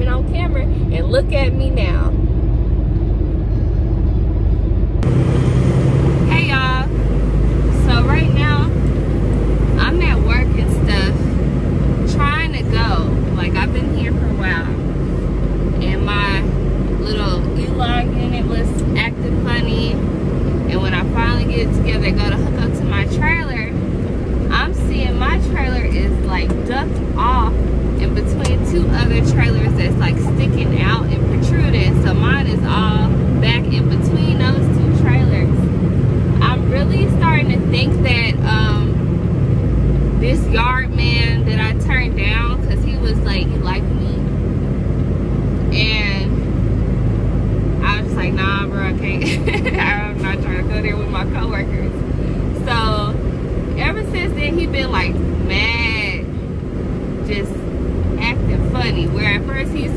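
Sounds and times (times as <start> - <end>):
woman talking: 0.0 - 2.2, 6.3 - 6.9, 7.6 - 8.8, 9.8 - 11.3, 12.0 - 14.8, 15.8 - 20.0, 20.6 - 23.8, 24.5 - 35.7, 36.4 - 39.0, 40.2 - 44.3, 45.7 - 46.5, 47.8 - 56.3, 57.2 - 57.6, 58.2 - 59.9
diesel engine idling: 0.0 - 59.9.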